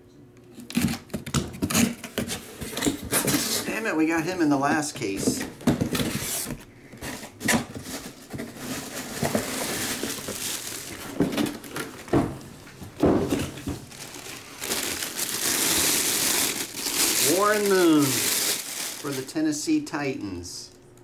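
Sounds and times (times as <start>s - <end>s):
plastic bag crinkling: 7.7s - 19.6s.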